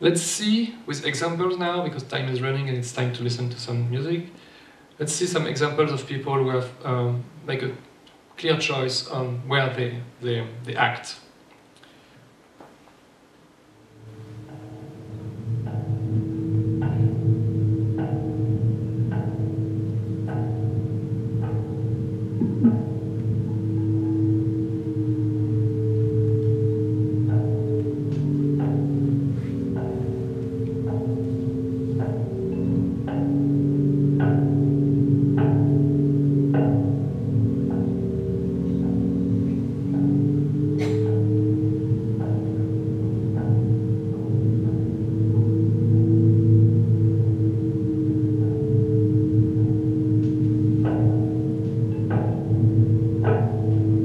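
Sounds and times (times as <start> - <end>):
low shifting held tones: 0.0 - 11.2, 13.2 - 54.0
struck pitched notes repeating: 13.9 - 54.0.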